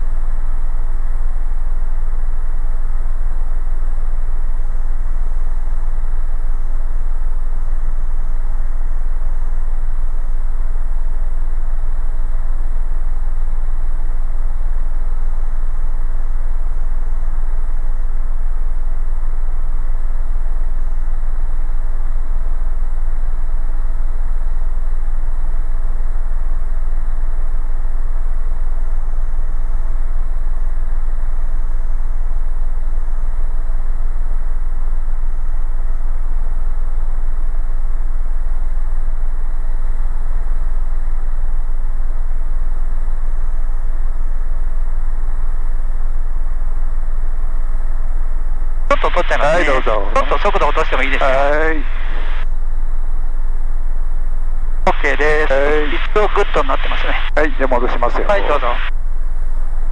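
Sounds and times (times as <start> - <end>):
helicopter cabin drone with whine: 0.0 - 59.9.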